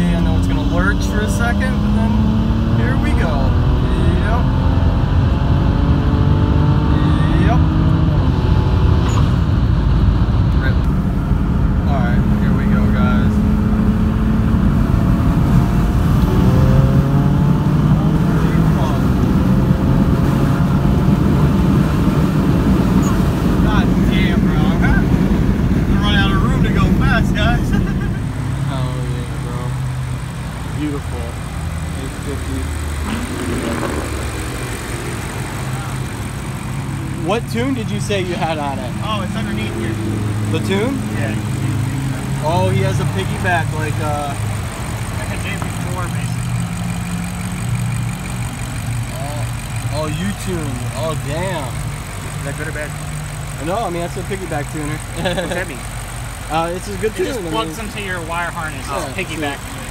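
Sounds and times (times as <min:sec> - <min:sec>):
car engine at full throttle: 0:00.0 - 0:59.9
quieter lower engine sound: 0:00.0 - 0:59.9.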